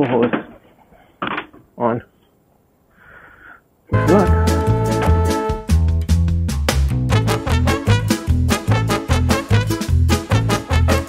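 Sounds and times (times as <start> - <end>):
faint breathy hiss: 2.8 - 3.9
upbeat swing music: 3.9 - 11.0.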